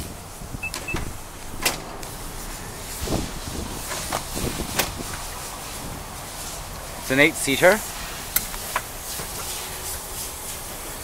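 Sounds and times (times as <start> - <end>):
door motor running: 0.6 - 2.6.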